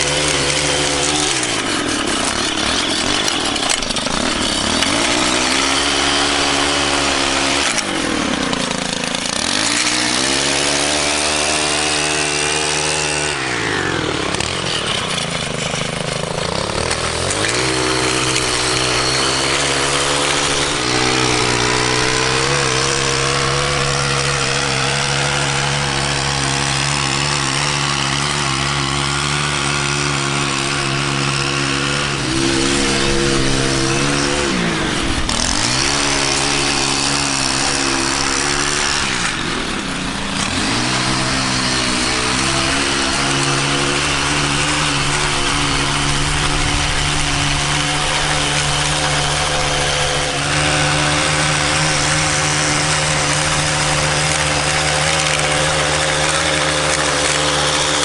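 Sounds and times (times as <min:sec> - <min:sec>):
small gas engine revving: 0:00.0 - 0:58.0.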